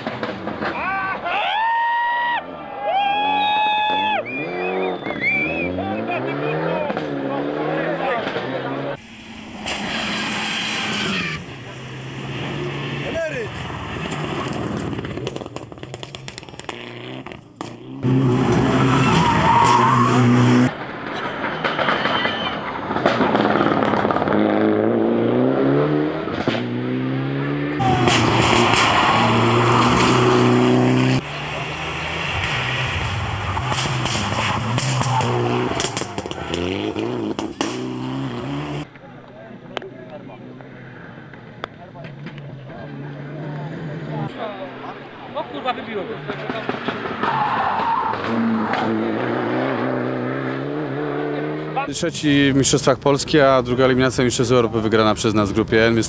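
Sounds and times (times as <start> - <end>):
rally car engine revving past: 4.2 - 20.7, 23.3 - 38.9, 42.2 - 51.9.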